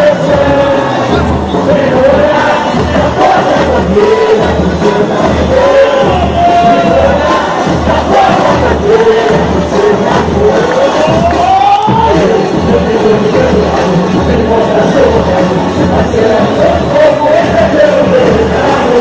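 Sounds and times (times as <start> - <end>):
crowd cheering: 0.0 - 19.0
crowd singing: 0.0 - 19.0
low drumbeat: 0.0 - 19.0.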